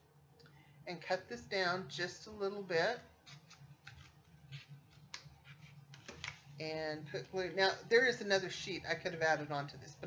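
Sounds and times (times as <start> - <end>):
scissors cutting paper: 3.2 - 6.4.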